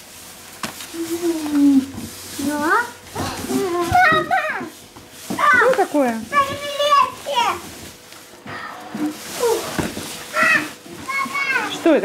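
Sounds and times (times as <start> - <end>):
children calling out: 0.9 - 4.8, 9.3 - 11.9.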